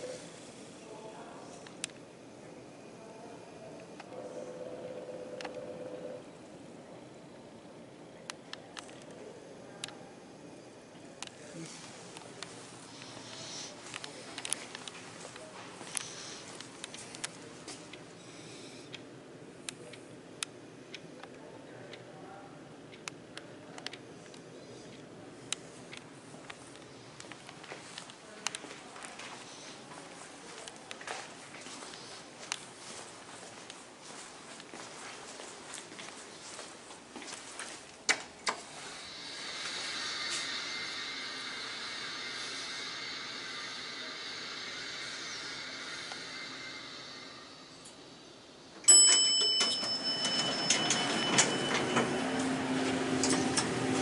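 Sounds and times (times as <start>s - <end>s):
low elevator hum: 0.0s - 19.9s, 31.5s - 54.0s
room hiss: 0.0s - 21.5s, 24.3s - 54.0s
footsteps on tile floor: 28.6s - 37.9s
elevator chime: 48.8s - 54.0s
elevator doors sliding open: 48.8s - 54.0s.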